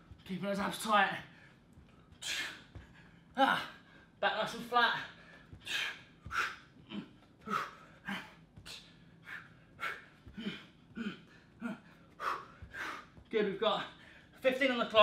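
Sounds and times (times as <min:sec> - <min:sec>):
man panting hard: 0:01.2 - 0:04.2, 0:04.9 - 0:14.4.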